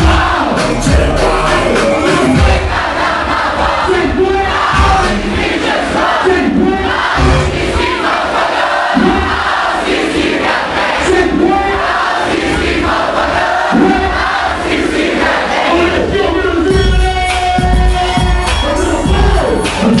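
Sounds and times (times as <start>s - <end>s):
hip-hop music with bass: 0.0s - 8.0s, 15.6s - 20.0s
crowd shouting: 0.0s - 20.0s.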